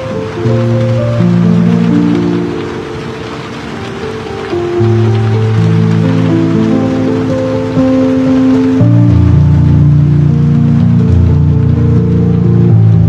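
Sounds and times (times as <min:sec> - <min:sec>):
rain hiss: 0:00.0 - 0:13.0
slow piano chords: 0:00.0 - 0:13.0.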